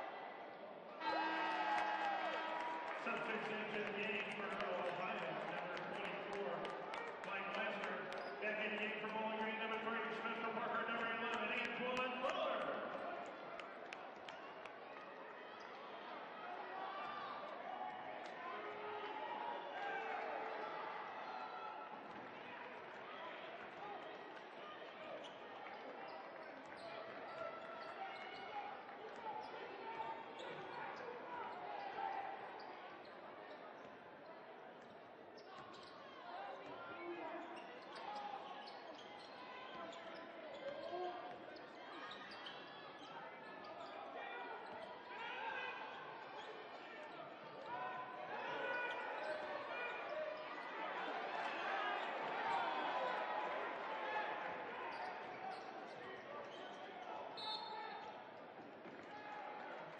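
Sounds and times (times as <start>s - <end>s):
murmur of crowd voices: 0.0s - 59.9s.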